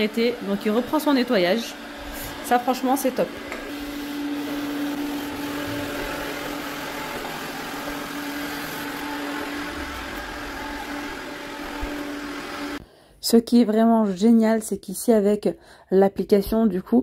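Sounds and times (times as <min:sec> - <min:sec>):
robot vacuum motor hum: 0:00.1 - 0:12.8.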